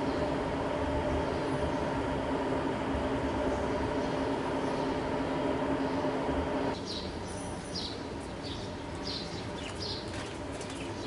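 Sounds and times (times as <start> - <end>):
small birds chirping: 0.0 - 0.4, 3.4 - 11.0
steady background hum: 0.0 - 11.0.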